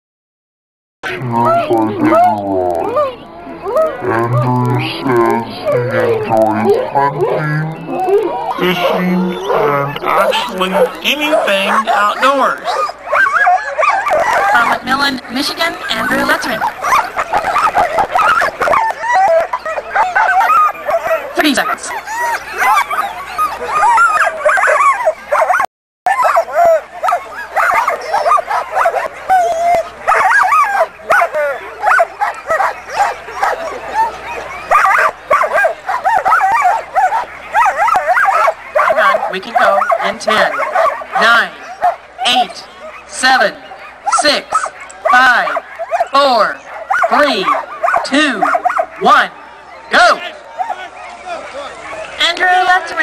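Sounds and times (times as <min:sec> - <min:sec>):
dogs barking yipping and whining: 0:01.1 - 0:53.0.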